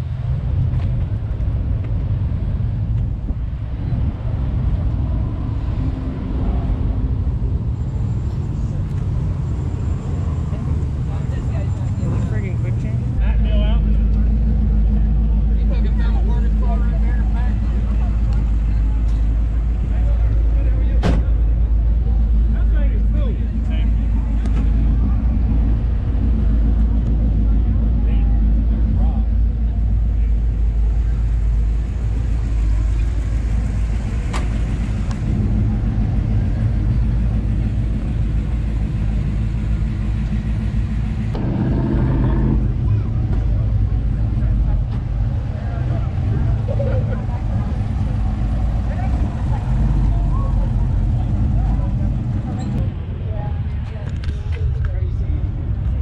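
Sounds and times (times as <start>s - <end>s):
low outdoor rumble: 0.0s - 56.0s
faint voices talking: 3.6s - 56.0s.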